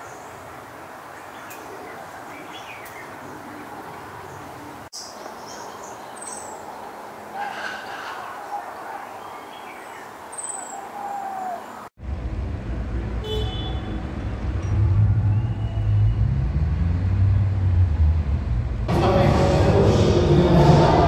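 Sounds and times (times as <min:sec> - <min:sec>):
road traffic rumble: 0:00.0 - 0:21.0
short bird calls: 0:07.3 - 0:11.9.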